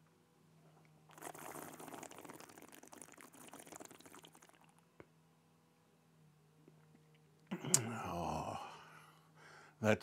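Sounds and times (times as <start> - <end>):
liquid swished in mouth: 1.1 - 4.8
wet crackly slurping: 1.1 - 4.8.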